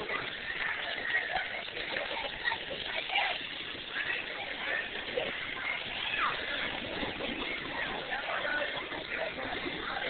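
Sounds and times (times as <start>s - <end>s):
faint children's voices: 0.0s - 10.0s
sprinkler spraying water: 0.0s - 10.0s.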